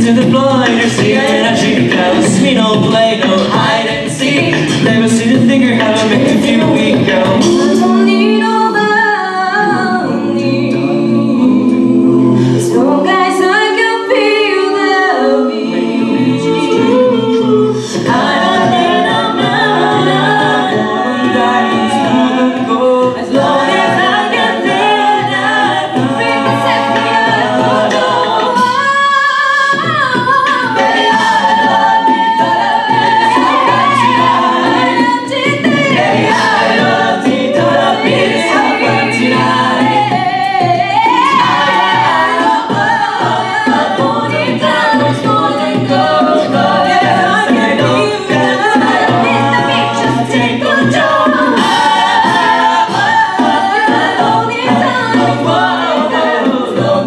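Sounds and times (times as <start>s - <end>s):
a cappella group singing: 0.0s - 57.0s.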